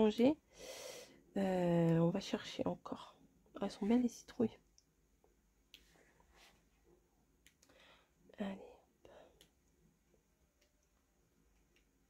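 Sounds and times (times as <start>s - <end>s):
woman whispering: 8.3s - 8.9s.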